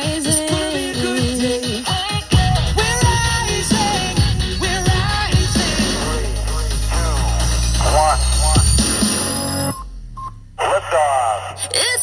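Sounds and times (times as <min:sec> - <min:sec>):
music with singing: 0:00.0 - 0:09.8
sung radio jingle: 0:00.0 - 0:12.0
high rising sweep: 0:02.4 - 0:10.6.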